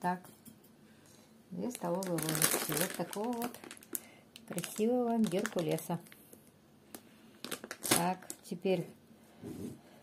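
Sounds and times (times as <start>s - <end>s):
plastic bag rustling: 1.6s - 6.3s, 7.4s - 8.5s.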